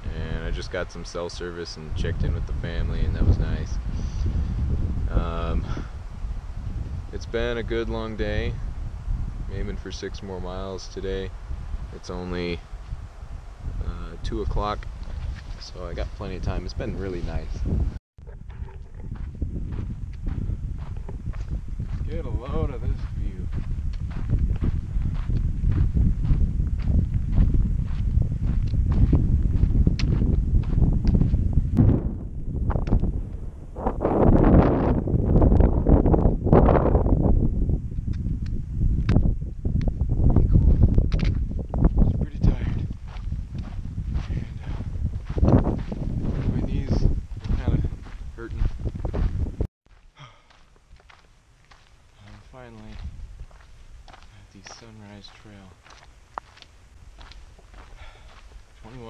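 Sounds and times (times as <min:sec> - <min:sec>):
steady low rumble: 0:00.0 - 0:59.0
footsteps on rocky dirt trail: 0:14.7 - 0:15.8, 0:18.5 - 0:31.6, 0:40.5 - 0:59.0
man's falling wordless voice: 0:50.2 - 0:50.6.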